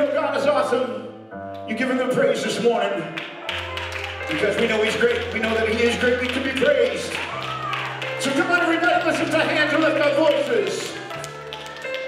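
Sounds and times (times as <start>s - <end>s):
church organ chords: 0.0s - 11.3s.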